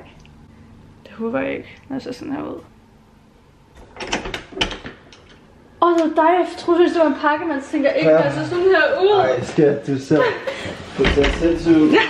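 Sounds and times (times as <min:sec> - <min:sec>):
door lock clicks and rattles: 0:03.8 - 0:05.4.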